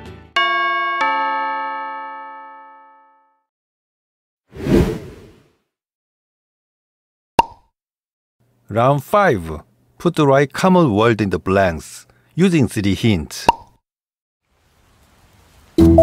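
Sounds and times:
two-note doorbell chime: 0:00.4 - 0:03.4
short whoosh: 0:04.6 - 0:05.4.

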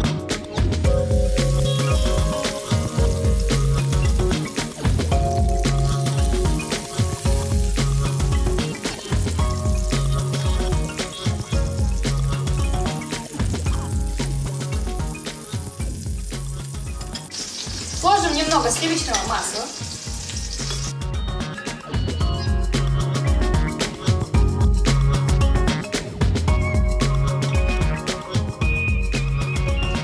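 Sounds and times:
background music with bass: 0:00.0 - 0:18.4, 0:20.1 - 0:30.0
chicken frying in oil: 0:01.0 - 0:21.0.

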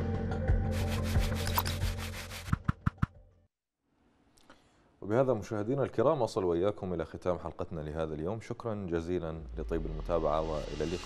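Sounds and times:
fast scratching texture: 0:00.7 - 0:02.7
low music bed: 0:09.1 - 0:11.0.

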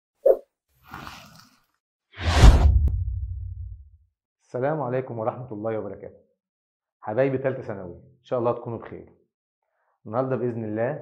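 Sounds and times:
faint swish: 0:02.2 - 0:03.8
loud whoosh with deep boom: 0:02.2 - 0:03.9.

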